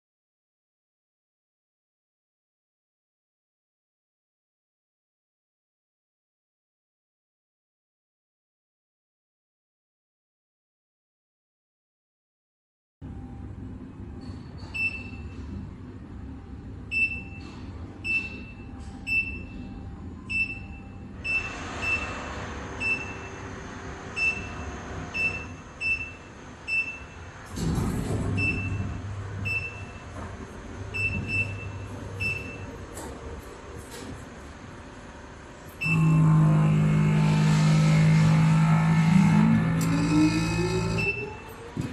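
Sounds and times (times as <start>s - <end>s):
steady low hum: 13.0s - 41.9s
short high key beeps: 31.0s - 32.7s.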